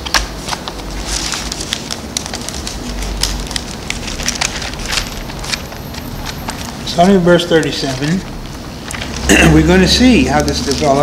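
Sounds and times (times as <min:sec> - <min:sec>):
paper pages turning: 0:00.0 - 0:11.0
steady hiss: 0:00.0 - 0:11.0.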